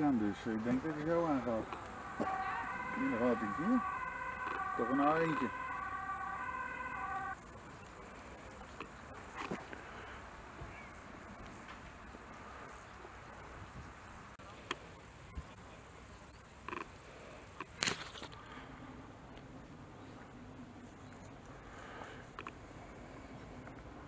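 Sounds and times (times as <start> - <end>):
steady pitched hum: 0.0 - 8.3
insects chirring: 0.0 - 18.3.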